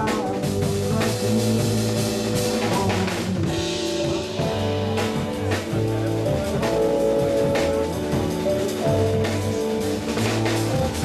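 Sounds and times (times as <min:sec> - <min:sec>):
drum kit with cymbals: 0:00.0 - 0:11.0
electric bass: 0:00.0 - 0:11.0
electric guitar: 0:00.0 - 0:11.0
keyboards: 0:00.0 - 0:11.0.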